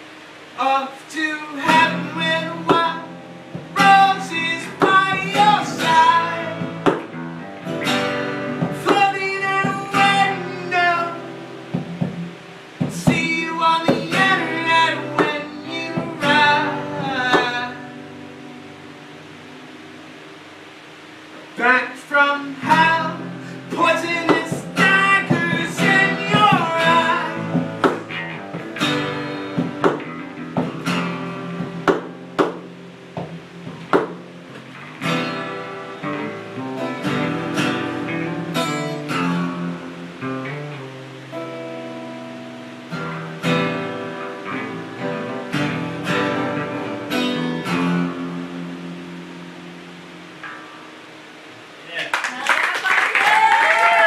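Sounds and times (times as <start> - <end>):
acoustic guitar playing: 0.0 - 52.0
person singing: 0.6 - 6.9, 8.6 - 11.4, 12.9 - 18.0, 21.6 - 28.0
audience applause and cheers: 51.9 - 54.0.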